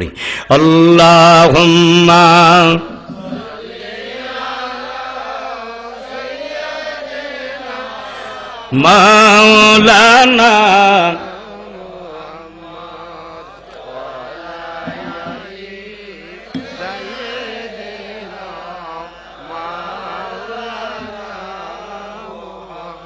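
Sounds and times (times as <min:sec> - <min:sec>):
many voices chanting: 0:01.3 - 0:23.0.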